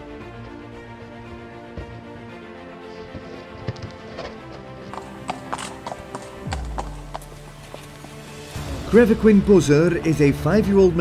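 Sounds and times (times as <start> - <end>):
background music: 0.0 - 11.0
horse hooves clopping on bricks: 3.0 - 8.3.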